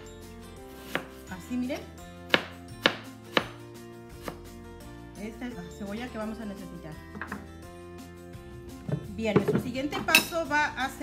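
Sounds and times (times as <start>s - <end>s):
knife knocking on cutting board: 7.1s - 7.5s, 8.8s - 10.2s.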